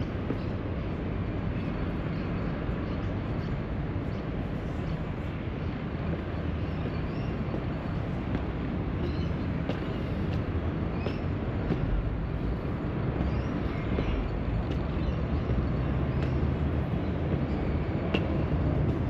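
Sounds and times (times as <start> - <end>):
low rumble of city traffic: 0.0 - 19.0.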